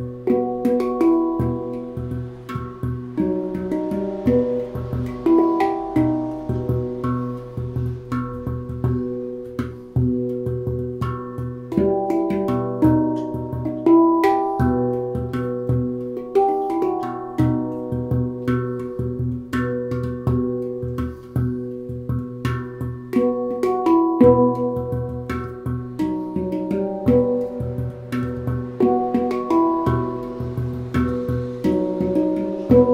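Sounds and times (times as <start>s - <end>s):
handpan played with fingers: 0.0s - 32.9s.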